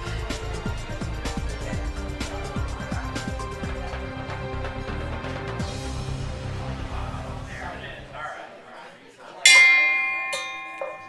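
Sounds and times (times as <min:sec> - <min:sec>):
bell ringing: 0:09.5 - 0:11.0.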